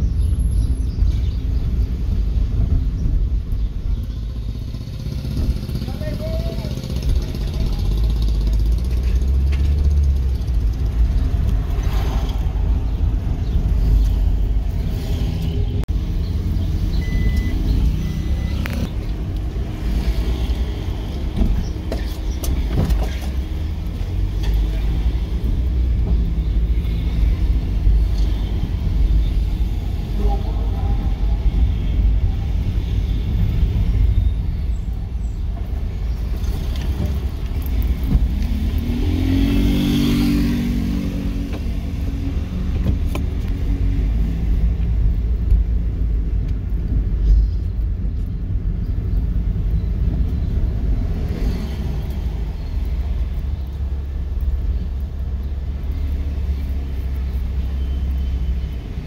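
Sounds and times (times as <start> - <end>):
car engine and road rumble: 0.0 - 59.0.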